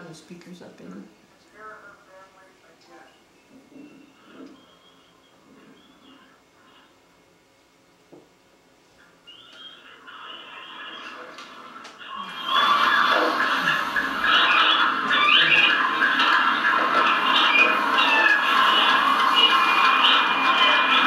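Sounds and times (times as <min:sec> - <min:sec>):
crowd video soundtrack on speakers: 0:11.5 - 0:21.0.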